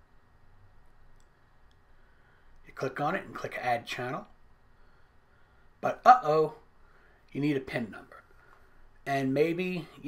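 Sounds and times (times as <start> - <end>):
faint clicks: 1.1 - 1.8.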